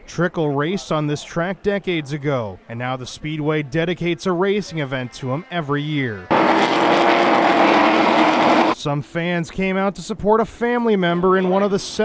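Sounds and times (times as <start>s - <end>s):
race trucks engines at speed: 6.3s - 8.8s.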